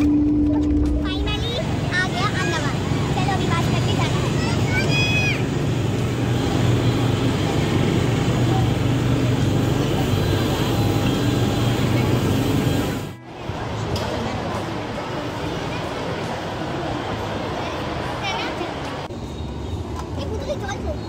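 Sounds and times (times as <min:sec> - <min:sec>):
engine drone of vehicles and aircraft: 0:00.0 - 0:19.2.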